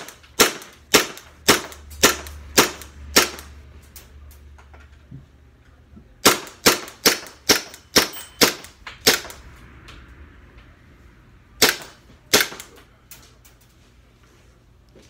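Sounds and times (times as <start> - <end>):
airsoft pistol shots: 0.0 - 3.5, 6.2 - 9.4, 11.6 - 12.7.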